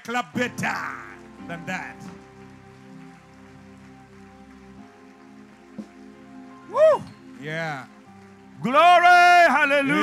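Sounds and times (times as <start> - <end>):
soft sustained keyboard chords: 0.3 - 10.0
crowd clapping: 0.4 - 10.0.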